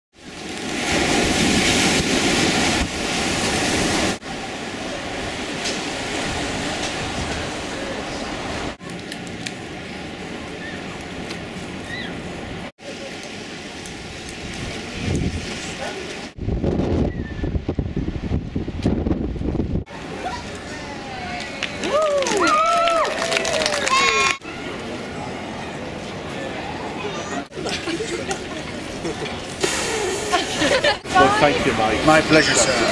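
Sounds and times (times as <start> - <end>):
wind on microphone: 4.9 - 8.8, 14.0 - 19.9
crowd voices: 19.9 - 32.9.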